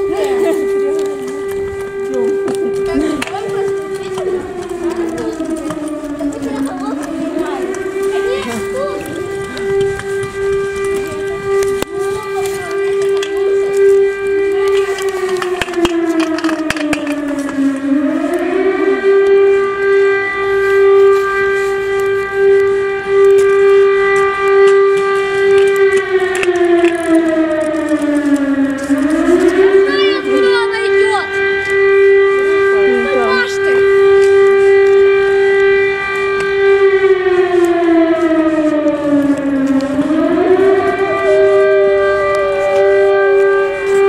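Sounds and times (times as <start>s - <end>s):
air-raid siren: 0.0s - 44.0s.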